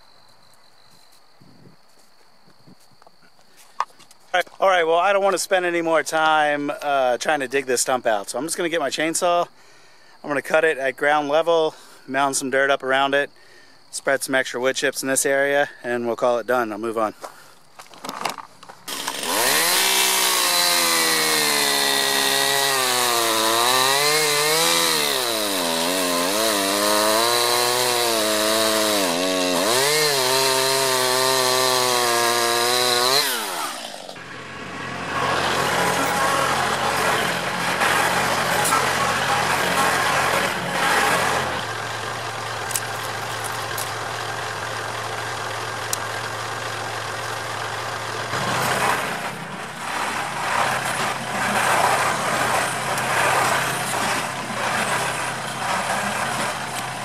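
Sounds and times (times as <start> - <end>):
tractor engine running: 17.7 - 57.0
chainsaw cutting a stump: 18.9 - 57.0.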